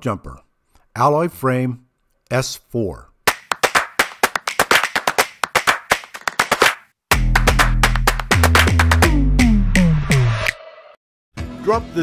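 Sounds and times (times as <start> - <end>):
sharp hand claps: 3.3 - 9.2.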